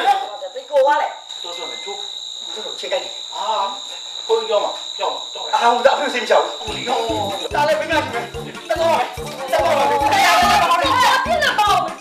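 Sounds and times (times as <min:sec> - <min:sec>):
crickets trilling: 0:00.0 - 0:11.6
low voices: 0:06.6 - 0:12.0.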